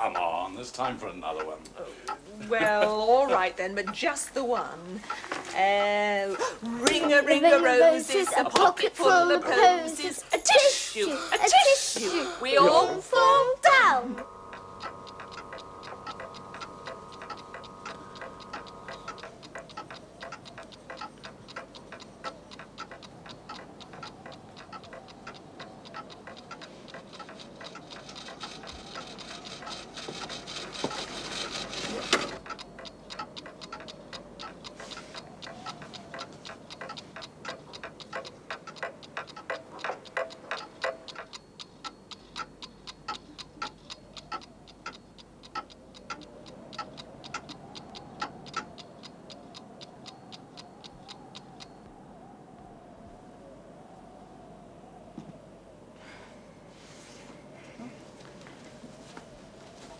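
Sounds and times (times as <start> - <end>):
mechanical clocks ticking: 0.0 - 52.8, 57.4 - 59.9.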